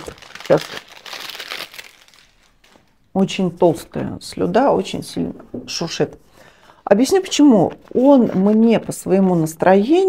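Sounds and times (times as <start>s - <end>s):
cellophane crinkling: 0.0s - 3.1s.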